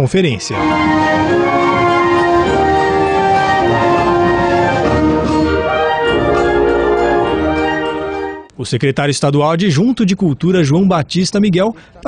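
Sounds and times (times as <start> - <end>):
wind band playing slow chords: 0.6 - 8.5.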